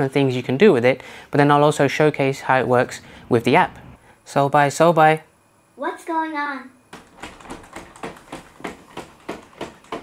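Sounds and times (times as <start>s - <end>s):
robot dog footsteps clicking: 6.9s - 10.0s.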